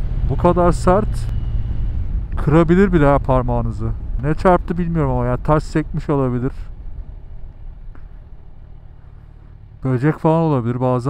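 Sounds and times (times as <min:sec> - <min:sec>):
wind noise: 0:00.0 - 0:09.1
motorcycle engine rumbling: 0:00.0 - 0:11.0.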